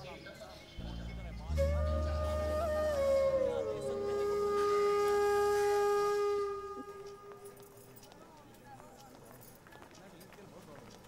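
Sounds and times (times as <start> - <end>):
wind instrument holding long note: 0.8 - 7.8.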